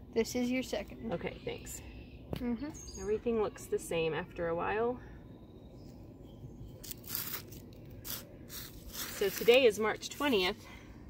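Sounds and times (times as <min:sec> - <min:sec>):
low steady rumble: 0:00.0 - 0:11.0
hand rustling fabric and soil: 0:06.8 - 0:10.8.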